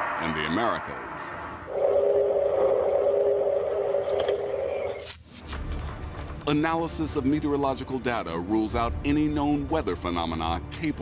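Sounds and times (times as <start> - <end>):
loud two-tone drone: 0.0 - 4.4.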